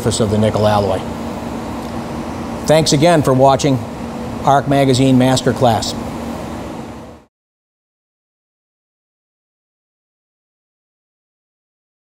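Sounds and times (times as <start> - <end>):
workshop room hiss: 0.0 - 7.3.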